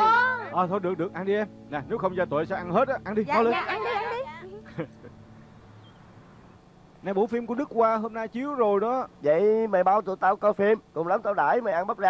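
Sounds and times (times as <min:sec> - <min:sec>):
low hum: 0:00.0 - 0:09.2.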